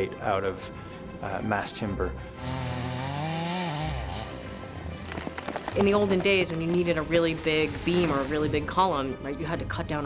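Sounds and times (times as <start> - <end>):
background music: 0.0 - 10.0
chainsaw engine revving: 2.4 - 4.8.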